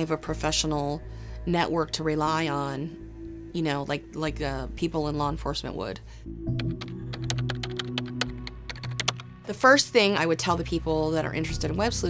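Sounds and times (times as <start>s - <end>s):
low held music drone: 0.0s - 12.0s
rapid keyboard typing clicks: 6.5s - 9.3s.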